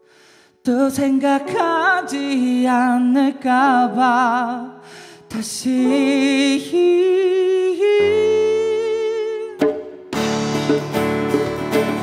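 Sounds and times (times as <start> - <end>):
person singing with vibrato: 0.6 - 9.6
piano chord: 5.7 - 12.0.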